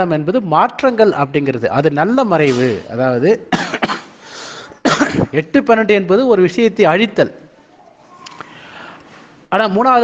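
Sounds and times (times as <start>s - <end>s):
man talking: 0.0s - 3.6s, 5.2s - 7.6s, 9.5s - 10.0s
man coughing: 3.5s - 5.4s.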